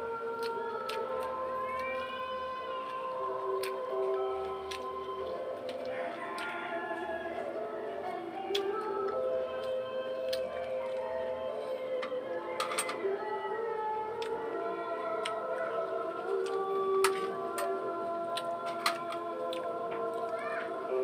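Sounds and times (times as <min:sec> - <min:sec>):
background music of held notes: 0:00.0 - 0:21.0.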